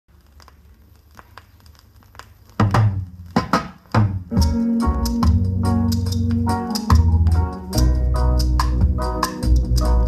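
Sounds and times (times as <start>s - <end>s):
vinyl crackle and clicks: 0.1s - 10.0s
reggae song: 2.6s - 10.0s.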